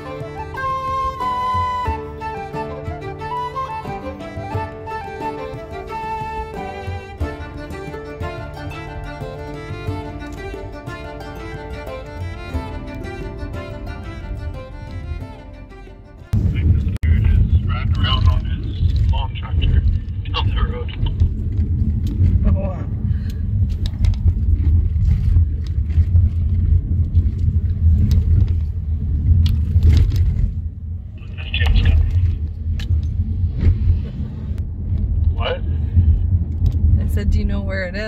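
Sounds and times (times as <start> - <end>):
car cabin road rumble: 0.0 - 38.0.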